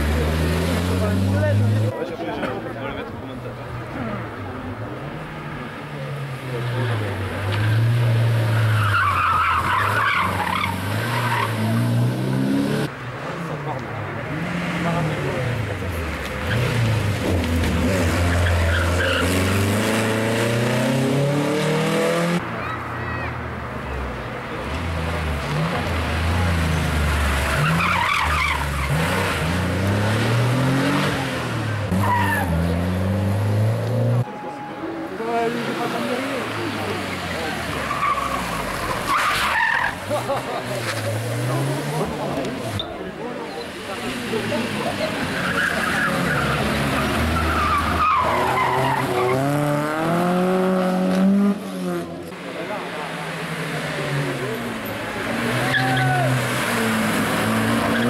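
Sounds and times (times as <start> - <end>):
rally car engines revving: 0.0 - 58.0
tyres squealing: 7.6 - 12.0, 45.0 - 49.6.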